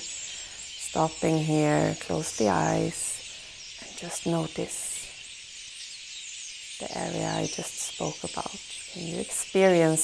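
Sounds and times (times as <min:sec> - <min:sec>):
small birds twittering: 0:00.0 - 0:10.0.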